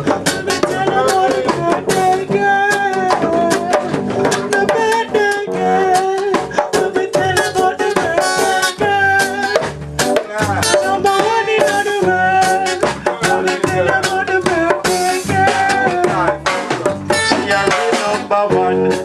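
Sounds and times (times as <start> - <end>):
drum beat: 0.0 - 19.0
guitar: 0.0 - 19.0
person singing: 0.0 - 19.0.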